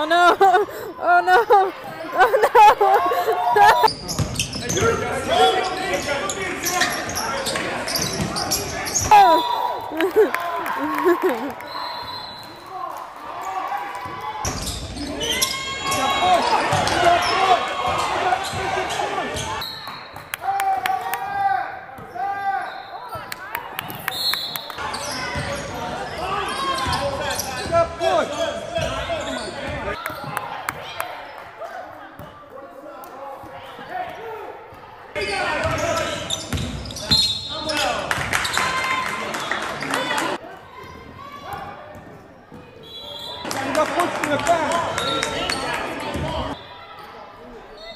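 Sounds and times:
voices of players and spectators: 0.0 - 47.9.

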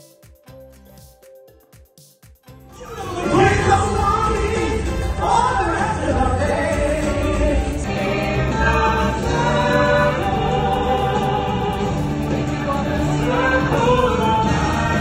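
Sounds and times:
stage-show music: 0.0 - 15.0
choir singing long notes: 2.7 - 15.0.

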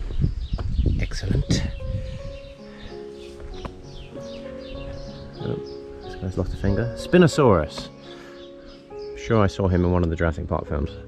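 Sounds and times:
birds chirping: 0.0 - 11.0
music of long held notes: 1.5 - 11.0.

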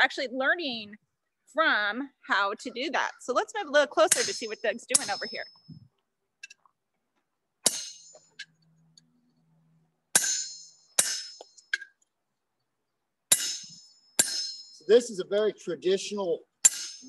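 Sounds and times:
hammer striking chisel on anvil: 4.1 - 5.4, 7.6 - 8.4, 10.2 - 11.9, 13.3 - 14.9, 16.6 - 17.0.

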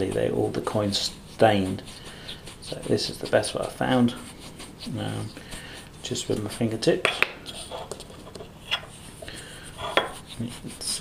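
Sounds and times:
fingertips rubbing paste on coin: 0.0 - 6.8, 8.9 - 11.0.

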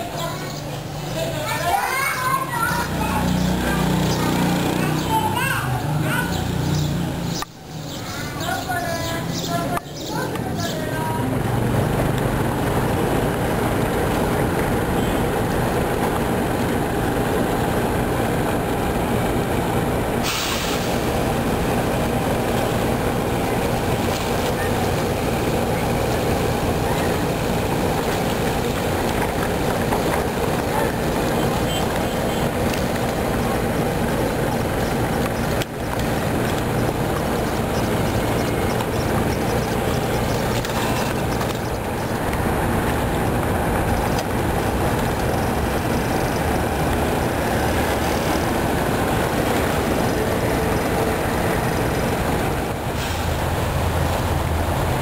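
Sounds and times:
loud engine rumble: 0.0 - 7.5, 8.1 - 55.0.

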